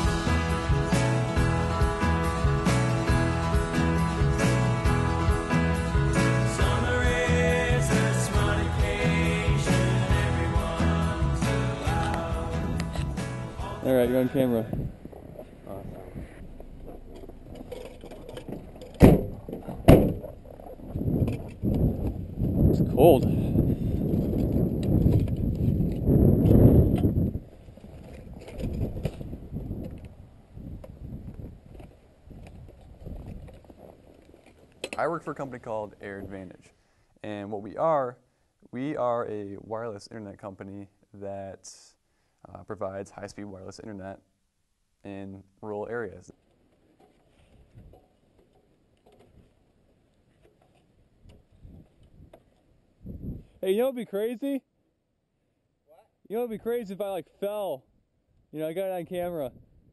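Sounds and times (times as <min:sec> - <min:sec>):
low rumbling microphone noise: 0:10.2 - 0:34.2, 0:53.0 - 0:53.6.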